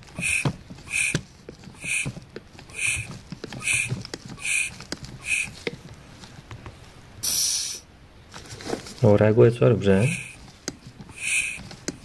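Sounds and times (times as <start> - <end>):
air hissing in vacuum line: 0.2 - 1.2, 1.8 - 5.6, 7.2 - 7.9, 10.0 - 10.4, 11.1 - 11.7
short air puff: 0.2 - 1.2, 1.8 - 5.6, 7.2 - 7.9, 11.1 - 11.6.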